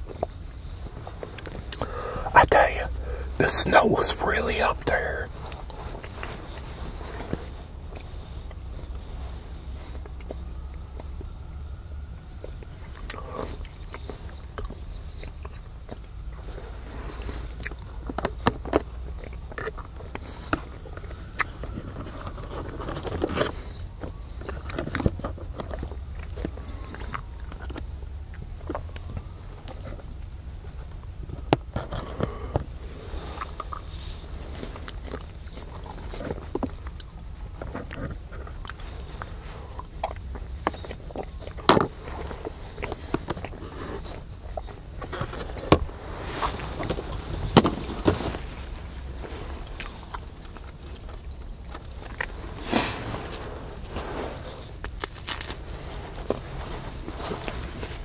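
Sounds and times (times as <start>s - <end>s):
steady low hum: 0.0s - 58.0s
person biting and chewing food: 54.4s - 56.5s.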